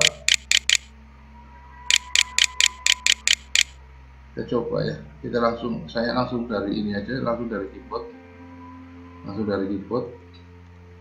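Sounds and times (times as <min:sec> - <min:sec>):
mouse button clicking: 0:00.0 - 0:00.9, 0:01.9 - 0:03.7.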